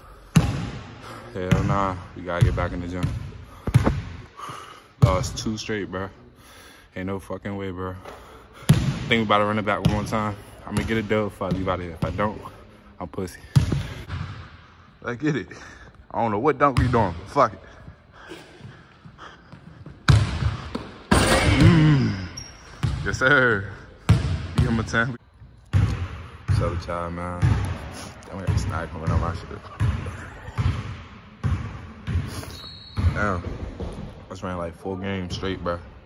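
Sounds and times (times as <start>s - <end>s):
basketball bouncing on gym floor: 1.5s - 4.2s, 8.7s - 9.2s, 9.8s - 12.3s, 13.5s - 14.4s, 19.5s - 22.0s, 24.1s - 24.9s, 25.6s - 34.2s.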